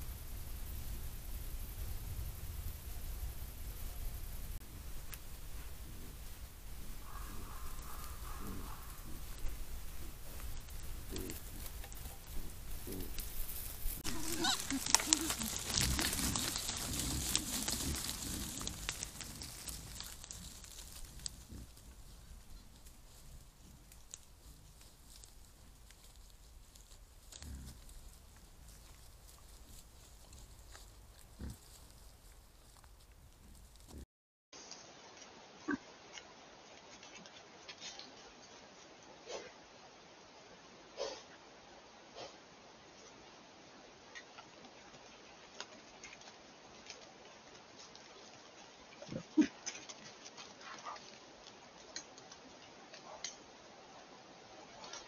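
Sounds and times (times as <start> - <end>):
rustles in leaf litter: 0.0 - 34.0
wild boar grunting: 4.7 - 31.9, 49.0 - 49.8.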